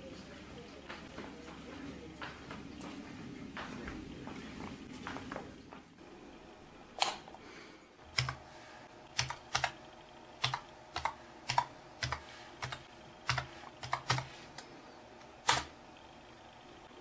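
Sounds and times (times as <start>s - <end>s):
keyboard typing: 8.1s - 8.4s, 9.1s - 9.8s, 10.4s - 14.7s, 15.4s - 15.8s.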